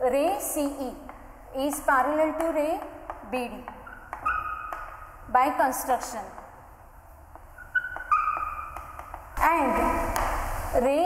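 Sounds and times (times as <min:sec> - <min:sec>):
chalk tapping on blackboard: 0:00.5 - 0:05.1, 0:07.3 - 0:10.6
chalk squeaking on blackboard: 0:03.7 - 0:05.2, 0:07.3 - 0:10.4.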